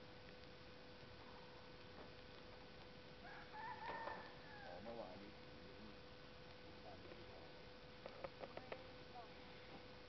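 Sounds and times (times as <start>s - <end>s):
rooster crowing faintly: 3.2s - 5.2s.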